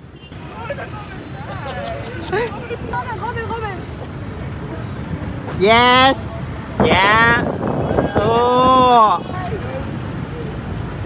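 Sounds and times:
city street traffic rumble: 0:00.0 - 0:11.0
unclear voices talking: 0:00.3 - 0:11.0.

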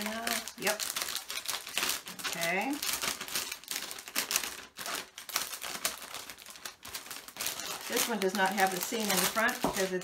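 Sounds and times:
cellophane bag crinkling: 0:00.0 - 0:10.0.

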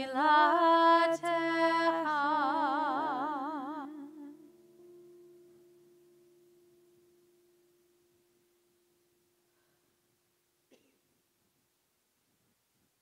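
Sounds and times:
sung prayer melody: 0:00.0 - 0:09.9.

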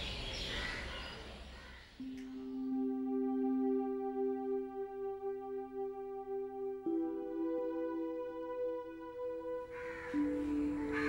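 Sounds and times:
crows cawing: 0:00.4 - 0:02.0, 0:09.7 - 0:11.0
soft background music chords: 0:02.0 - 0:11.0.

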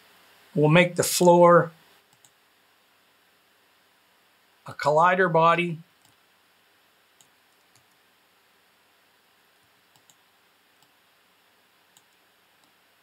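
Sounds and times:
faint computer mouse clicks: 0:02.1 - 0:02.4, 0:06.0 - 0:06.2, 0:07.2 - 0:08.0, 0:09.9 - 0:10.2, 0:10.8 - 0:11.0, 0:11.9 - 0:12.8.

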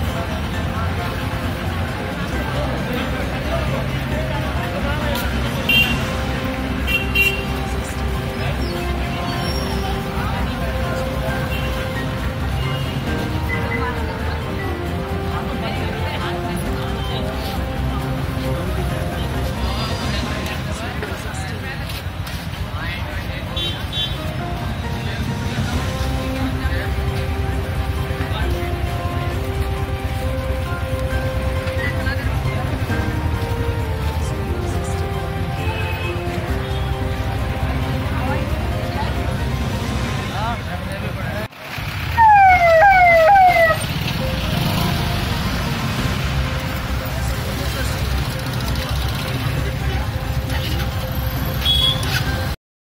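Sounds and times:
people talking: 0:00.0 - 0:41.6, 0:42.2 - 0:52.5
background music: 0:00.0 - 0:52.6
crowd chatter: 0:00.0 - 0:52.6
street noise: 0:00.0 - 0:52.6
traffic: 0:00.0 - 0:52.6
vehicle siren sweeps: 0:42.1 - 0:45.2.

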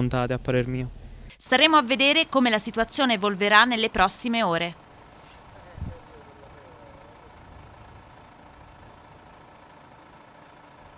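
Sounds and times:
lorry diesel engine idling: 0:02.0 - 0:10.9.

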